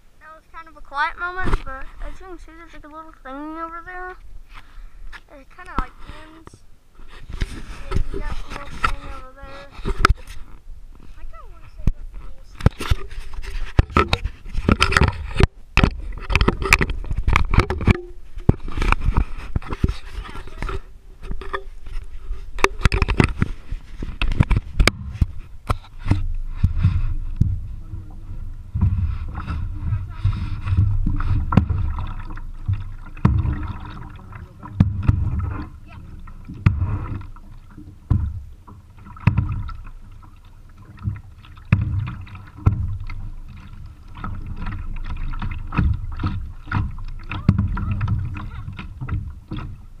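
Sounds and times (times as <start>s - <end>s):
muffled rumble of water: 0.0s - 50.0s
paddle knocking on plastic hull: 12.6s - 21.9s, 22.6s - 50.0s.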